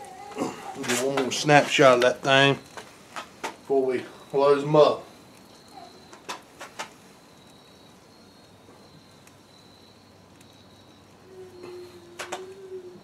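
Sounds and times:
high insect trill: 0:00.0 - 0:13.0.

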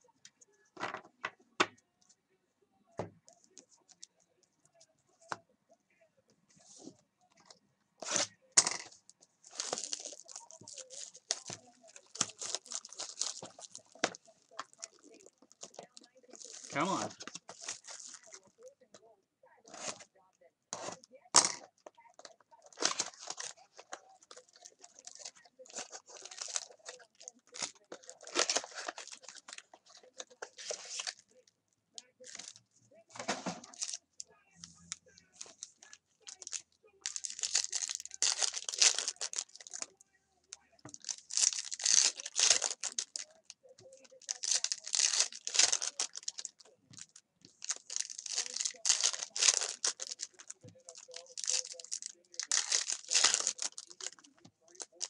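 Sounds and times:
foil packs tearing and crinkling: 0:09.5 - 0:18.4, 0:22.2 - 0:31.2, 0:36.2 - 0:39.9, 0:40.9 - 0:43.3, 0:44.0 - 0:55.0.

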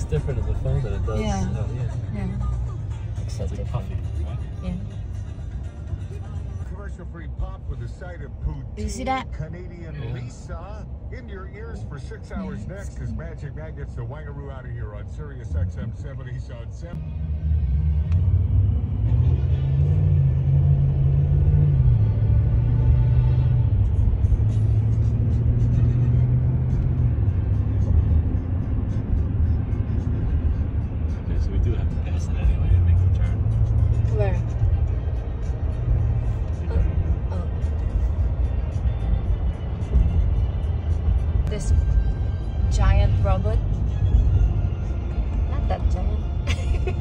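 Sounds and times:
pop music on car radio: 0:00.0 - 0:17.0, 0:21.7 - 0:47.0
road rumble inside car: 0:00.0 - 0:47.0.

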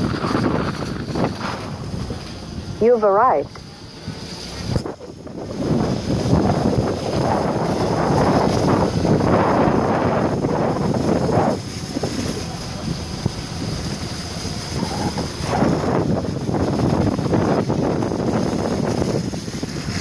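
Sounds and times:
vehicle on wet dirt road: 0:00.0 - 0:20.0
wind rushing on microphone: 0:00.0 - 0:20.0.

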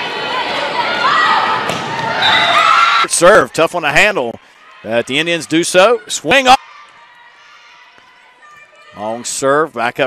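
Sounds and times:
low crowd murmur: 0:00.0 - 0:02.2.

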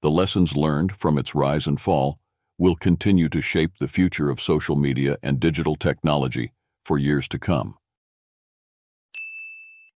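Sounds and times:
bright chime: 0:09.2 - 0:10.0.

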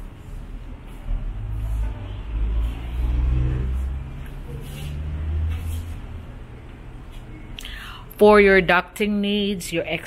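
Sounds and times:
vehicle engine revving: 0:01.3 - 0:06.4.

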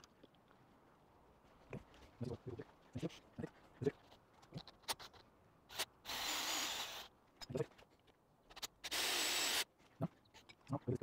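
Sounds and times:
cordless drill boring into wood: 0:05.7 - 0:07.1, 0:08.8 - 0:09.7.

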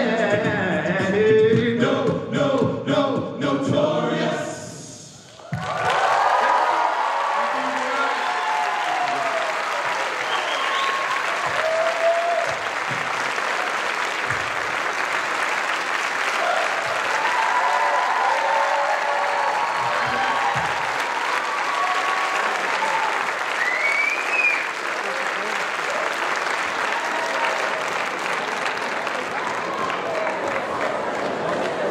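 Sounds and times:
people cheering: 0:05.3 - 0:31.9
audience applauding: 0:05.4 - 0:31.9.

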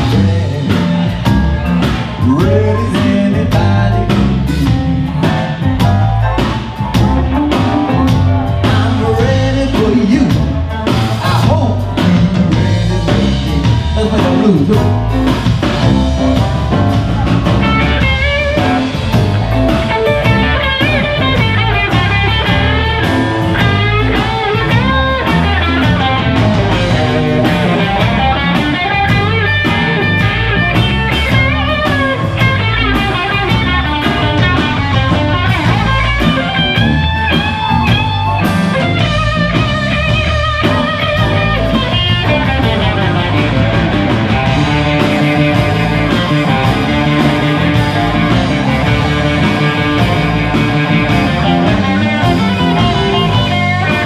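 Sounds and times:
bass guitar: 0:00.0 - 0:54.0
drum kit: 0:00.0 - 0:54.0
electric guitar solo: 0:14.9 - 0:54.0.

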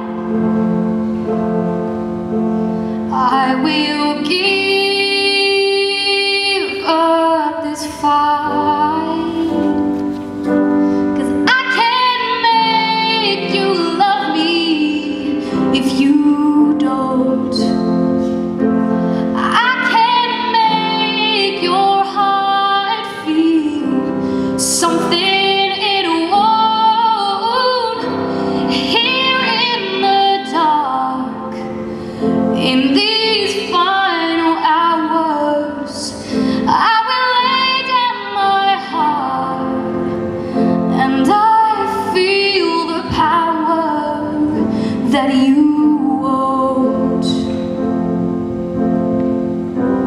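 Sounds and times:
woman singing with vibrato: 0:00.0 - 0:10.0, 0:10.6 - 0:48.4.

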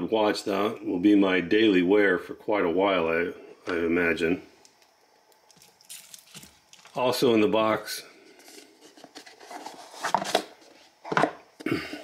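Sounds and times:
cardboard box handling rustles: 0:08.4 - 0:11.1.

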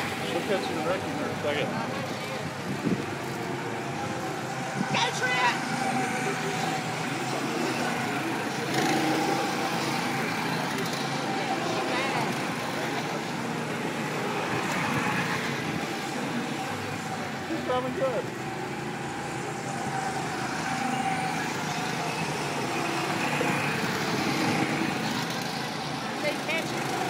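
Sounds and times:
go-kart engines running: 0:00.0 - 0:27.0.

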